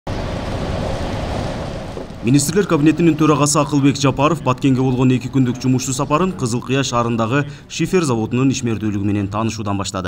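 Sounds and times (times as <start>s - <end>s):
wind on microphone: 0.1s - 3.2s
vehicles driving over gravel: 0.1s - 7.4s.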